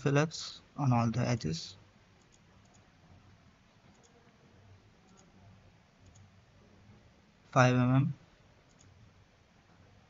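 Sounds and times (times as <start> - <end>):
faint computer mouse clicks: 3.9 - 4.2, 5.0 - 5.3, 6.0 - 6.3, 8.7 - 9.0.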